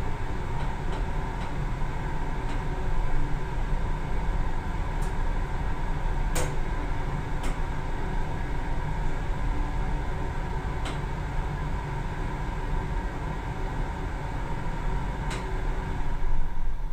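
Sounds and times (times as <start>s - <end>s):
elevator low rumble: 0.0s - 16.9s.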